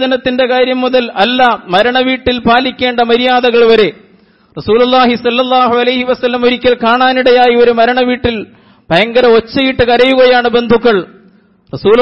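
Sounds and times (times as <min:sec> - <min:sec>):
man preaching: 0:00.0 - 0:12.0.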